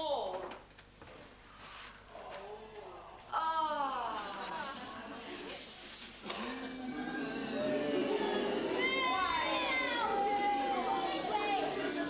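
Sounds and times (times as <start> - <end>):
children calling out together: 6.3 - 12.0.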